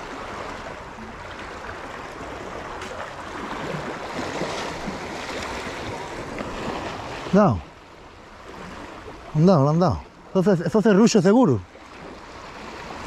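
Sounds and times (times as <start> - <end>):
sea water washing against jetty: 0.0 - 13.0.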